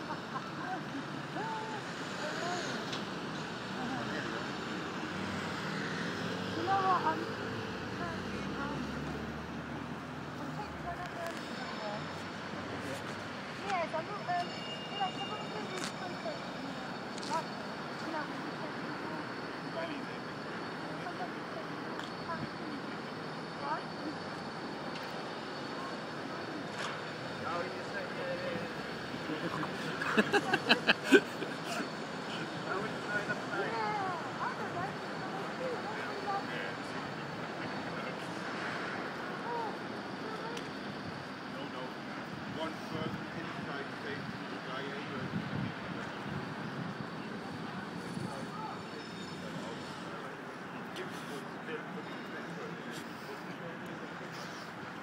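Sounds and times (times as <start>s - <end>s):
street traffic: 0.0s - 55.0s.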